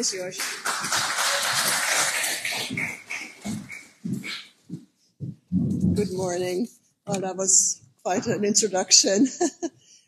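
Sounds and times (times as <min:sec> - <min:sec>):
audience applause: 0:00.0 - 0:03.8
low thumps and bumps: 0:02.6 - 0:07.3.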